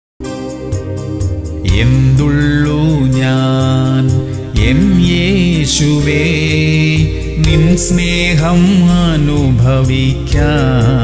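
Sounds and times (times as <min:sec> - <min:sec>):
musical accompaniment: 0:00.2 - 0:11.0
man singing worship song: 0:01.6 - 0:11.0.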